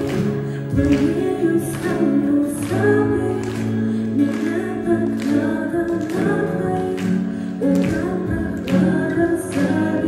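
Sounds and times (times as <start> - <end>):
woman singing into microphone: 0.0 - 10.0.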